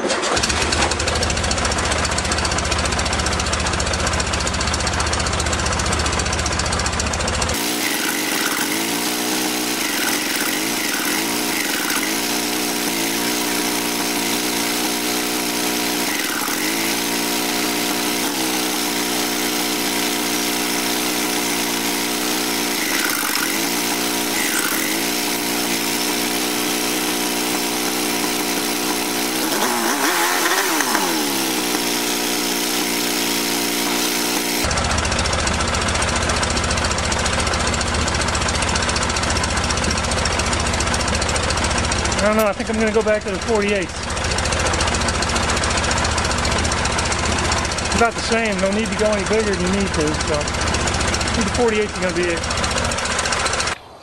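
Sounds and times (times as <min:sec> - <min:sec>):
car engine idling unevenly: 0:00.1 - 0:07.6, 0:34.6 - 0:53.8.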